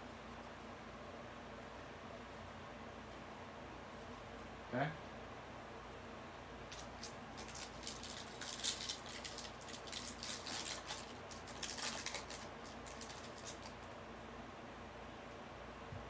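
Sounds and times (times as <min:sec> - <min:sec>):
foil wrapper crinkling and tearing: 0:06.7 - 0:13.9.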